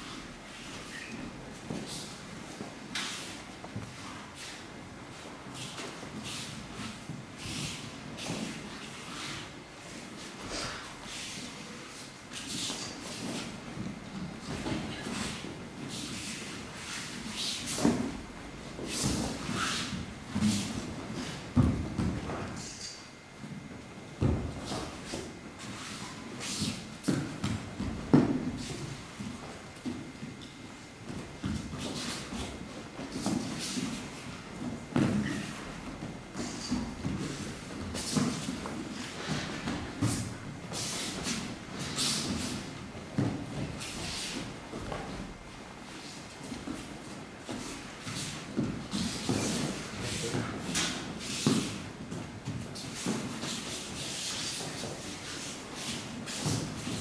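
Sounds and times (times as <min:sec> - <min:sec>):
bare feet padding on mats: 0:00.0 - 0:22.8, 0:23.4 - 0:57.0
bodies thudding on mats: 0:17.7 - 0:22.5, 0:24.2 - 0:25.1.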